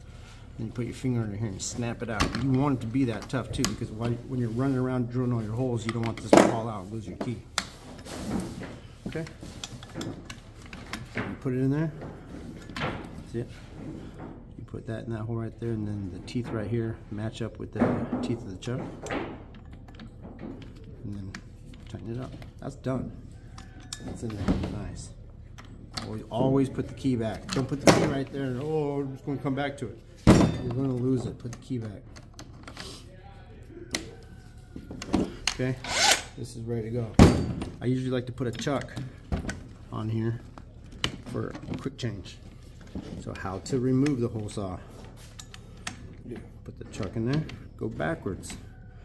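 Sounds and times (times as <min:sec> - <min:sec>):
faint tool handling: 0:00.4 - 0:14.5, 0:37.1 - 0:49.0.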